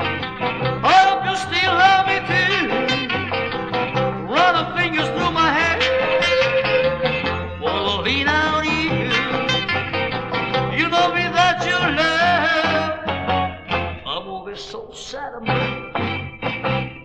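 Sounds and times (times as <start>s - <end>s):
bass and drums: 0.0s - 14.1s, 15.5s - 17.0s
electric guitar melodic lines: 0.0s - 17.0s.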